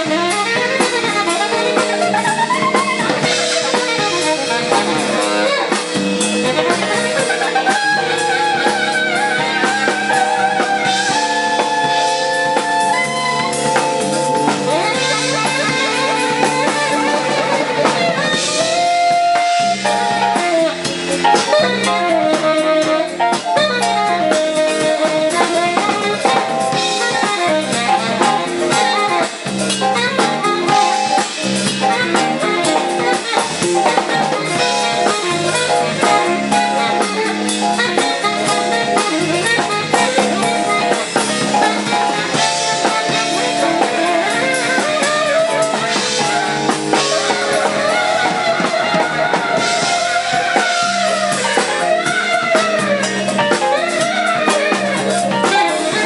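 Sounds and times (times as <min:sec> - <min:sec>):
jazz-funk band playing: 0:00.0 - 0:56.0
tenor saxophone solo: 0:00.0 - 0:56.0.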